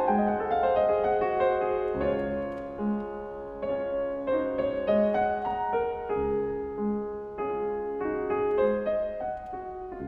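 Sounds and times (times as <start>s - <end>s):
solo classical piano: 0.0s - 10.0s.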